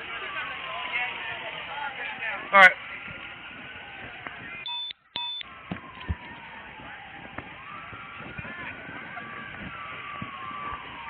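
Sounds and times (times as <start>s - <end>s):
crowd walking: 0.0s - 4.6s, 5.4s - 11.0s
short electronic beeps: 4.6s - 5.4s.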